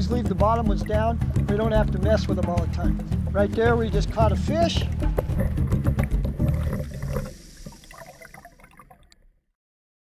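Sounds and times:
underwater churning and bubbling: 0.0s - 9.4s.

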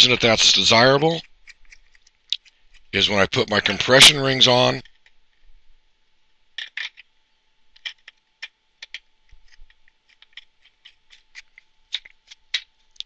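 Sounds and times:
plastic clicks and scrapes: 1.2s - 2.9s, 7.7s - 13.0s.

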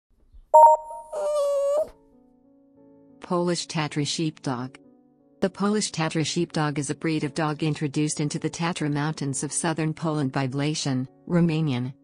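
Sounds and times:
bright two-tone ding: 0.6s - 1.4s
wavering pitched call: 0.6s - 1.9s.

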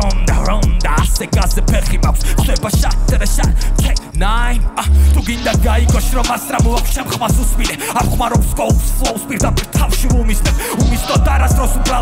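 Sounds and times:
hi-hat ticks: 0.0s - 4.2s, 5.4s - 12.0s
hip-hop beat with bass kicks: 0.0s - 12.0s
person rapping fast: 0.0s - 12.0s.

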